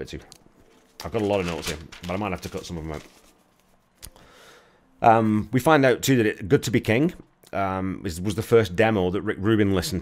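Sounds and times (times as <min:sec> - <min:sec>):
soft short breath in: 0:04.1 - 0:04.9.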